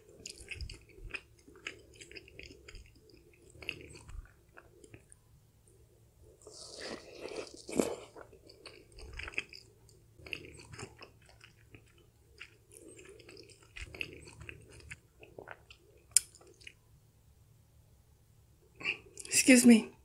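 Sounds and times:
person chewing with wet smacks: 0:00.0 - 0:05.2, 0:06.4 - 0:16.8.

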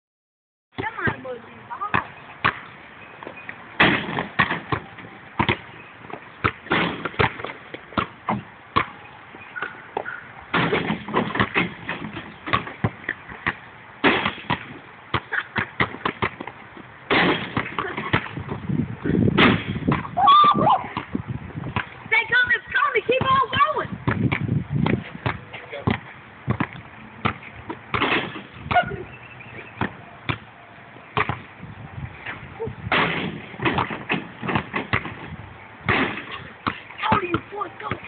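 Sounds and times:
basketball bouncing thuds: 0:00.7 - 0:09.0, 0:09.6 - 0:22.0, 0:23.0 - 0:28.9, 0:29.6 - 0:30.5, 0:31.1 - 0:31.5, 0:32.2 - 0:38.0.

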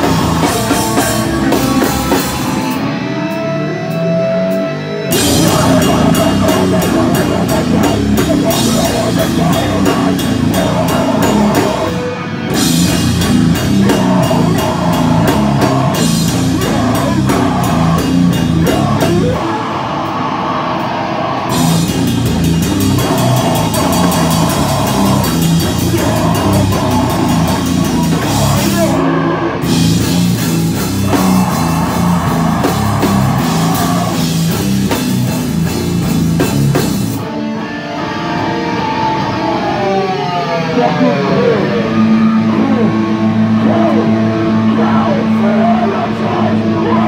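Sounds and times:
punk band playing live: 0:00.0 - 0:47.0.

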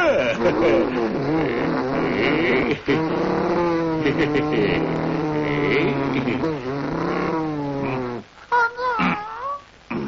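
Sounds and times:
low drawn-out cartoon voice: 0:07.5 - 0:10.0.

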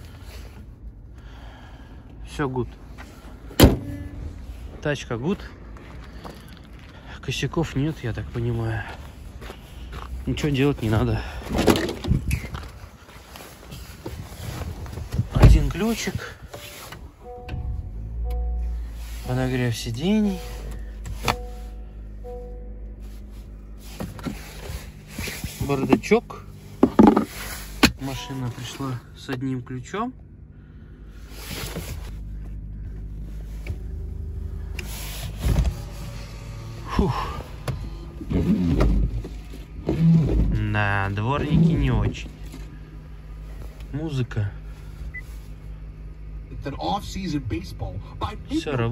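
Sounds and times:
low uneven rumble: 0:00.0 - 0:48.9
shuffling and handling noise: 0:11.8 - 0:17.1, 0:22.9 - 0:29.0, 0:31.2 - 0:36.8
power window motor running: 0:32.4 - 0:40.5.

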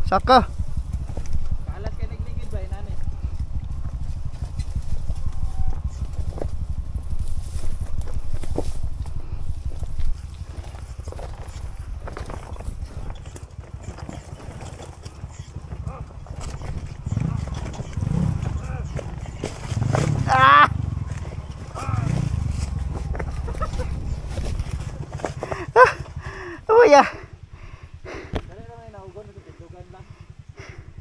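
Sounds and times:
motorcycle engine at low revs: 0:00.0 - 0:31.0
stones knocking under wheels: 0:07.7 - 0:26.2
person calling out: 0:20.2 - 0:20.8, 0:25.6 - 0:26.0, 0:26.6 - 0:27.3.

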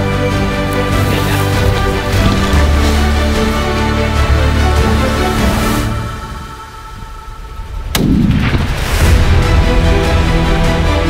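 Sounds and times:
low echo of gunshot: 0:07.9 - 0:09.0.

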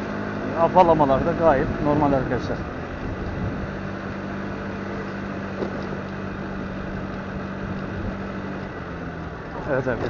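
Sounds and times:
motorcycle engine running: 0:00.0 - 0:10.0
road and air noise: 0:00.0 - 0:10.0.

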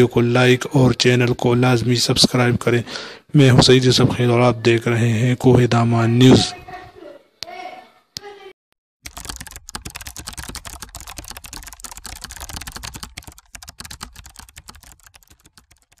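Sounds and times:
keyboard typing clicks: 0:09.0 - 0:16.0.

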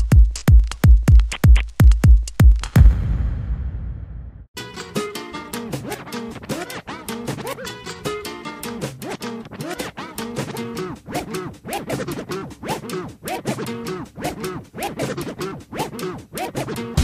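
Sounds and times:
record scratching over a beat: 0:00.0 - 0:02.8, 0:05.7 - 0:07.8, 0:08.8 - 0:17.0.

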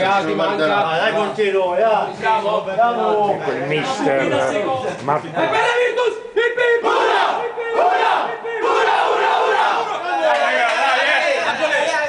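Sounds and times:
men shouting together: 0:05.4 - 0:12.0.

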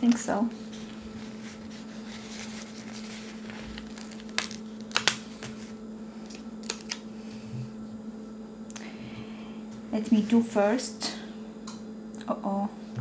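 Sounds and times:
steady low hum: 0:00.0 - 0:13.0
stickers peeling crackles: 0:00.8 - 0:07.0.

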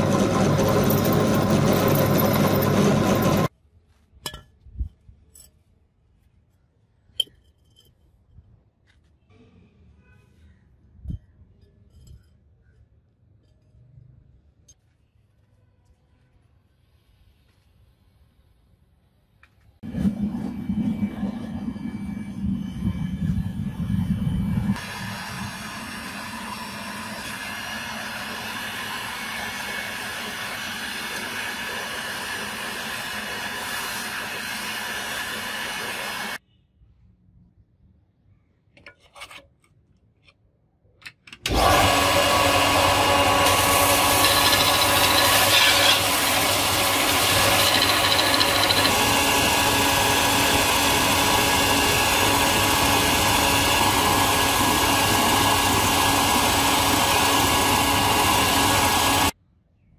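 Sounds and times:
belt grinder grinding steel: 0:00.0 - 0:03.5, 0:24.6 - 0:36.4, 0:41.5 - 0:59.3
steady machine hum: 0:00.0 - 0:03.5, 0:19.8 - 0:36.4.

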